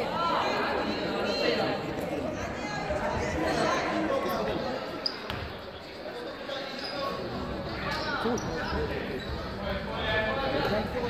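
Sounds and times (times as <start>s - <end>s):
indistinct echoing voices: 0.0s - 11.0s.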